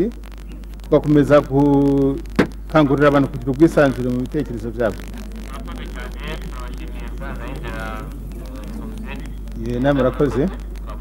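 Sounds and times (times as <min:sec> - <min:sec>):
steady low hum: 0:00.0 - 0:11.0
faint distant speech: 0:02.7 - 0:11.0.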